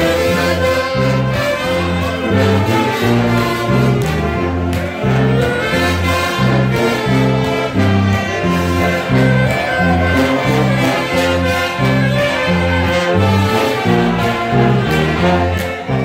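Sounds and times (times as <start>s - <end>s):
bouncing bass line: 0.0s - 16.0s
brass band playing gospel hymn: 0.0s - 16.0s.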